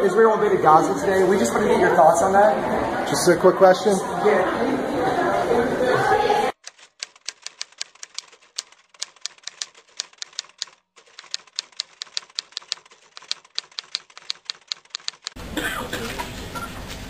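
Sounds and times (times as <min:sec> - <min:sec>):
typewriter keys clacking: 0:06.6 - 0:15.4.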